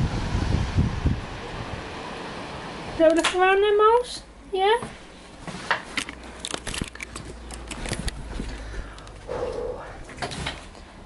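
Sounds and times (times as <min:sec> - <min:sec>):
camera handling noise: 0:06.0 - 0:08.2
small sharp clicks and rattles: 0:06.0 - 0:09.2
short vocal sound: 0:09.3 - 0:10.1.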